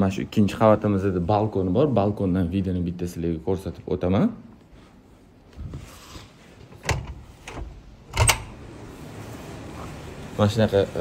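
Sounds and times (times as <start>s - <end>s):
glass door frame and latch clacks: 6.8s - 8.6s.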